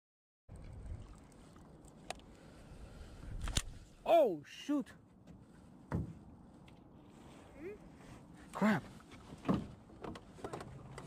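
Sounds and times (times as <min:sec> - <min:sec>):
wind on microphone: 0:00.5 - 0:01.2.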